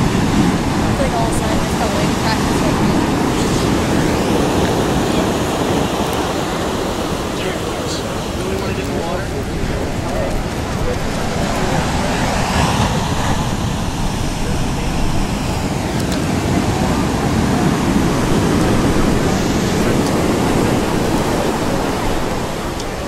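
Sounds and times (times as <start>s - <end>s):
ocean waves breaking: 0.0s - 23.0s
faint indistinct voice: 1.0s - 23.0s.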